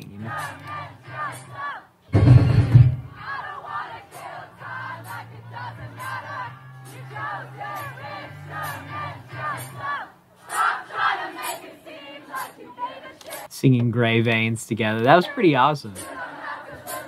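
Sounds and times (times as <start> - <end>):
crowd singing along: 0.0 - 13.5, 14.8 - 17.0.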